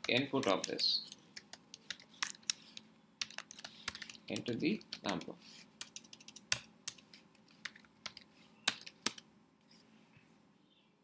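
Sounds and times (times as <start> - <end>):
typing on keyboard: 0.0 - 2.6, 3.2 - 9.2.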